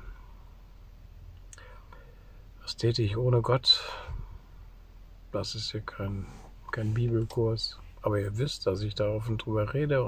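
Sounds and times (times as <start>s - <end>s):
faint breath: 1.5s - 2.5s, 3.8s - 4.5s.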